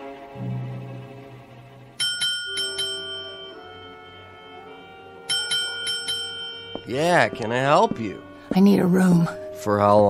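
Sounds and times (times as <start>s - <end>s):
dramatic music: 0.0s - 2.0s
small bell ringing: 2.0s - 7.4s.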